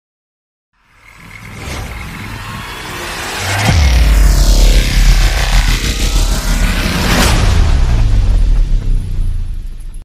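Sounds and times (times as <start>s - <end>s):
rumbling hissing riser: 0.8s - 8.8s
deep boom with falling sweep: 1.0s - 9.7s.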